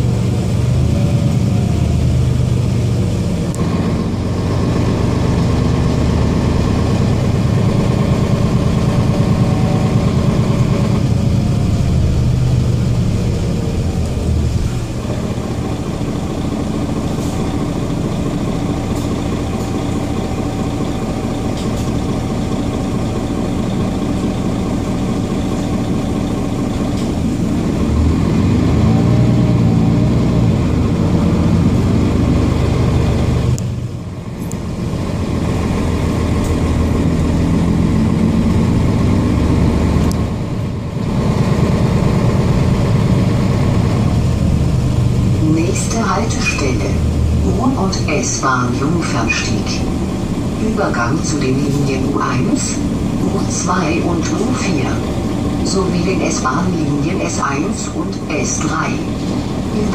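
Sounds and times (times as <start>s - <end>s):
bus diesel engine running: 0.0s - 59.9s
engine whine: 0.0s - 59.9s.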